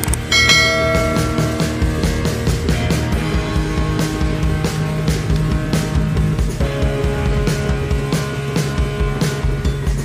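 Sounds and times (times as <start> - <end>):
rock music with guitar: 0.0 - 10.0
bell chime: 0.3 - 3.0.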